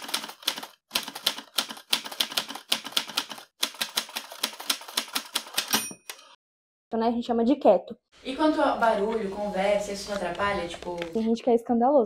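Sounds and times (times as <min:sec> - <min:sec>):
typewriter bell ring: 0:05.6 - 0:06.3.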